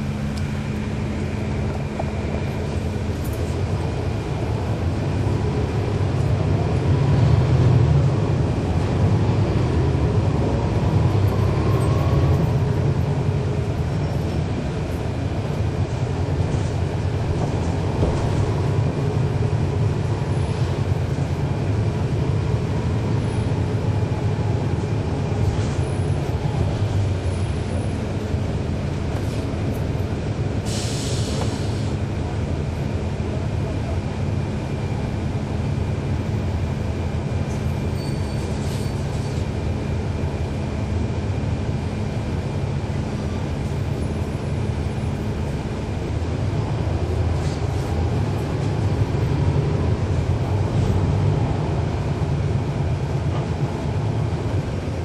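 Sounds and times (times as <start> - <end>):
bus diesel engine running: 0.0 - 55.0.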